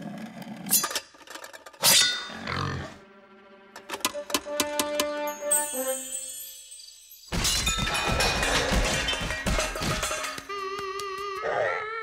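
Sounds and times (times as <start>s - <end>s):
metal armour and debris impacts: 7.3s - 10.5s.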